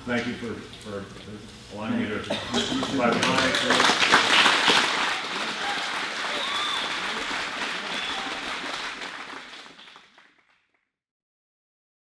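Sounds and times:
audience applauding: 0:02.8 - 0:10.7.

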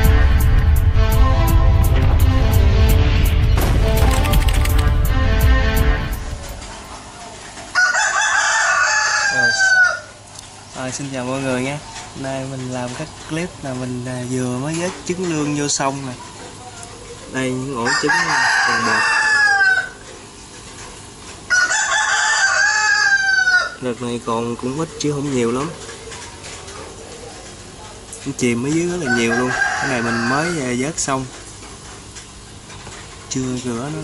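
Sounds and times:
rooster crowing: 0:06.2 - 0:10.2, 0:17.8 - 0:20.2, 0:21.5 - 0:23.8, 0:28.9 - 0:31.1.

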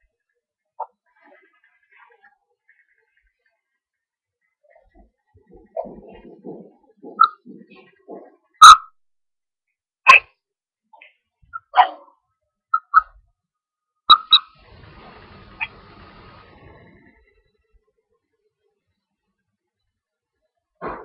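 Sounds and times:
short sharp animal calls: 0:10.1 - 0:10.3
faint steady hiss: 0:14.5 - 0:17.9.

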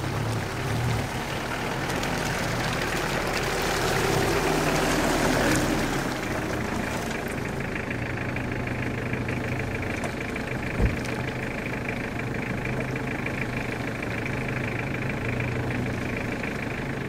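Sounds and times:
car engine running: 0:00.0 - 0:17.0
low thump: 0:10.7 - 0:11.1.

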